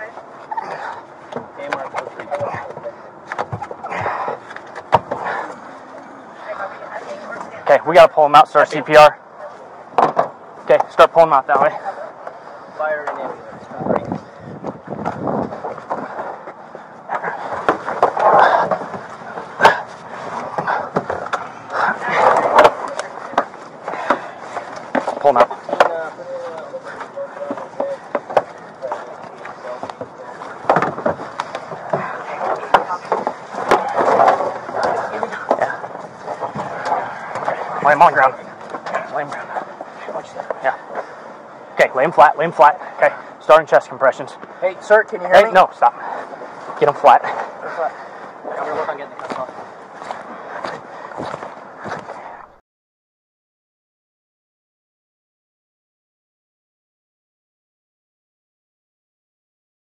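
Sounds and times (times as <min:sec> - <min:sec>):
voices talking: 0:00.0 - 0:52.6.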